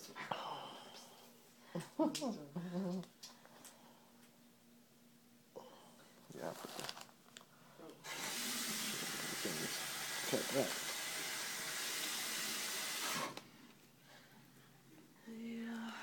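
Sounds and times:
water running from a tap: 8.0s - 13.4s.

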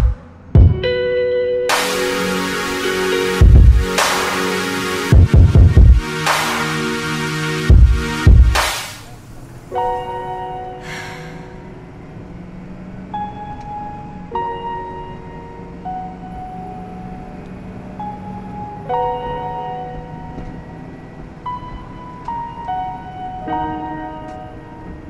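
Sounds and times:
slow electronic music: 0.0s - 25.0s.

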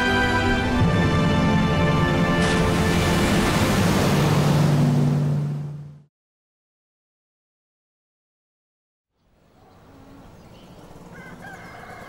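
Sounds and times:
rural outdoor ambience: 9.1s - 12.0s
rooster crowing faintly: 11.1s - 12.0s.

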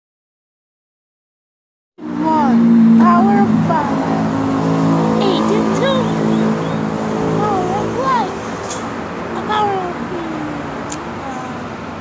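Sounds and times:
highway traffic noise: 2.0s - 12.0s
low engine hum: 2.0s - 12.0s.

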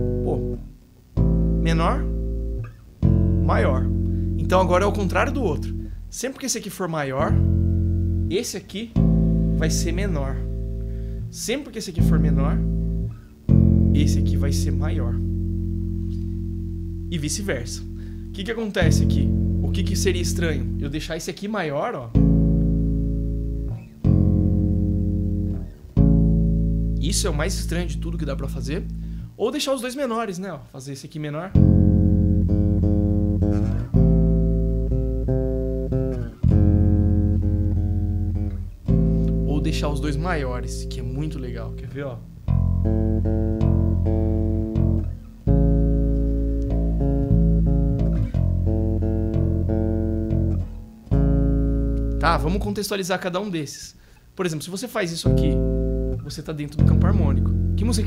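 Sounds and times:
electric bass chords ringing: 0.0s - 6.3s, 6.9s - 29.4s, 31.5s - 53.0s, 55.0s - 58.0s.

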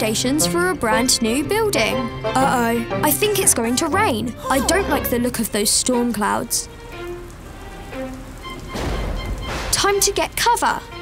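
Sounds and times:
soft background music: 0.0s - 11.0s
cartoon rain falling: 3.4s - 11.0s
thunder rumble: 4.6s - 10.9s.

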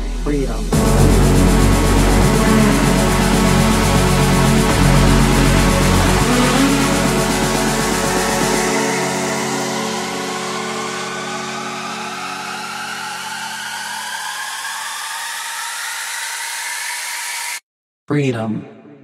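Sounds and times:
techno bass: 0.0s - 10.6s
sustained synth chords: 0.0s - 15.4s
rising noise sweep: 0.0s - 17.6s.

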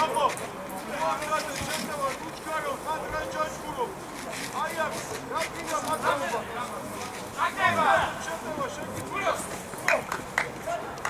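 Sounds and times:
distant voices shouting: 0.0s - 11.0s.

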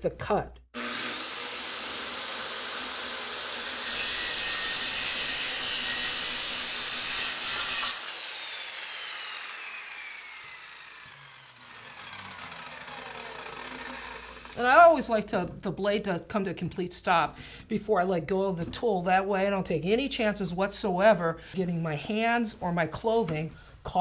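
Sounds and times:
circular saw whining: 0.8s - 14.9s
saw blade coasting down: 0.8s - 14.9s
saw cutting wood: 0.8s - 15.3s.

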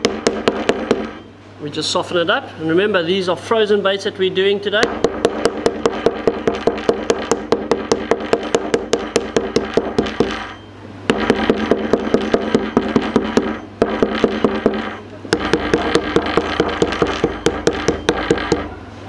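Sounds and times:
meat hammer tapping frozen fish: 0.0s - 1.2s, 4.8s - 10.5s, 11.1s - 18.8s.

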